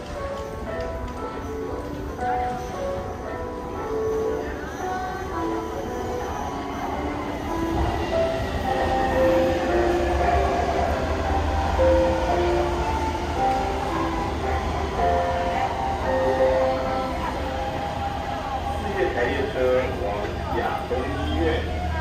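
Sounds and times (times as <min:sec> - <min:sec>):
train low rumble: 0:00.0 - 0:22.0.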